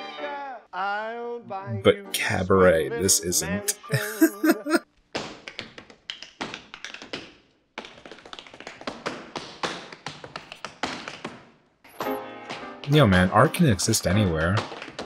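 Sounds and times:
tap shoes on stage floor: 5.1s - 11.7s, 12.4s - 13.0s, 14.0s - 15.0s.

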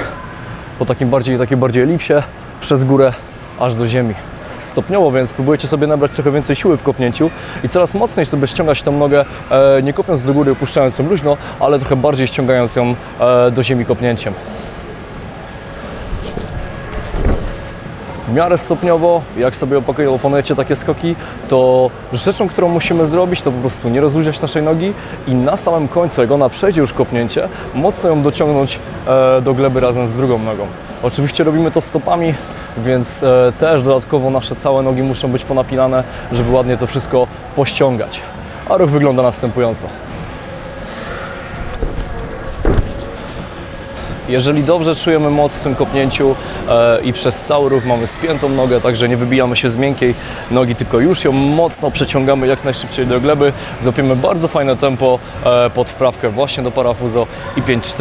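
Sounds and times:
faint background music: 0.0s - 58.0s
barefoot steps on gym mat: 16.1s - 17.7s, 41.6s - 43.5s.

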